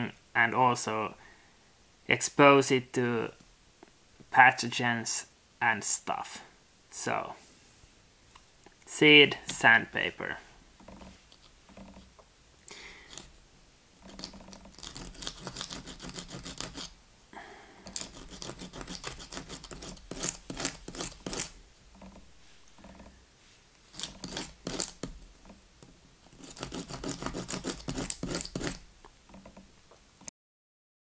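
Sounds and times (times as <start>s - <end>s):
seed scratching on sandpaper: 14.1s - 17.0s, 17.9s - 21.6s, 23.9s - 25.1s, 26.3s - 28.9s.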